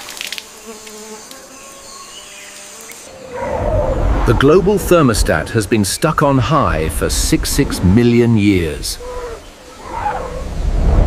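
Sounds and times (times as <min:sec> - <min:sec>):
deep rumble: 0:03.3 - 0:09.3, 0:10.3 - 0:11.0.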